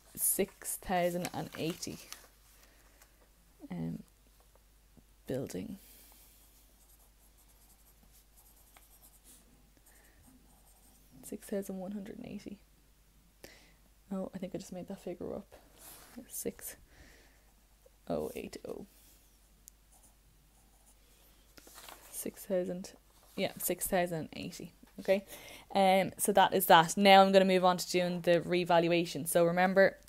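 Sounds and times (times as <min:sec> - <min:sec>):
pencil scratching on paper: 0:06.3 - 0:11.6.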